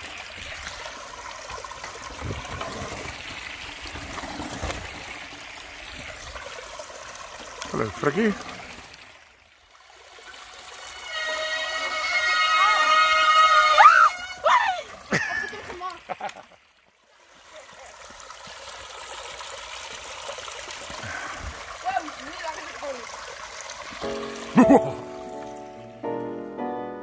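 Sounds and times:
stream trickling: 0.0 - 26.5.

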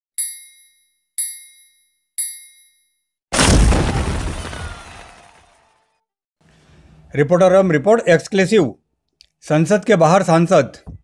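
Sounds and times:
bell-like countdown dings: 0.2 - 3.1.

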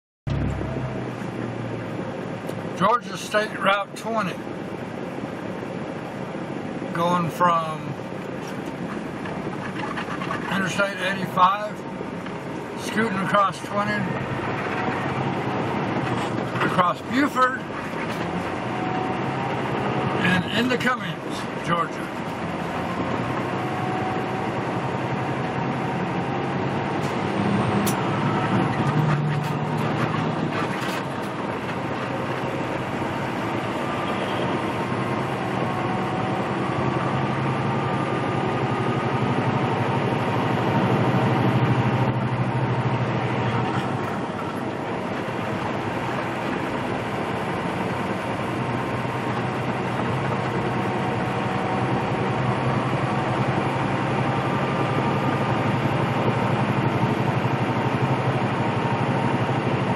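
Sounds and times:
diesel truck engine running: 0.3 - 59.9
road noise: 0.3 - 59.9.

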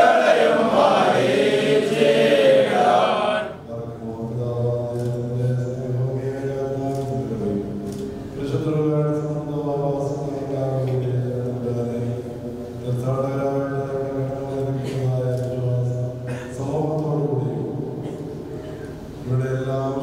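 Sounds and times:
man chanting prayer: 0.0 - 7.8, 8.4 - 18.1, 19.2 - 20.0.

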